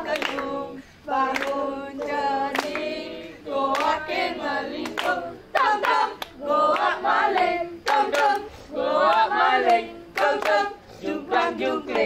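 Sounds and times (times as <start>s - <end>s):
children singing in unison: 0.0s - 12.0s
sharp hand claps: 0.1s - 0.5s, 1.3s - 1.6s, 2.4s - 2.9s, 3.7s - 4.0s, 4.8s - 8.5s.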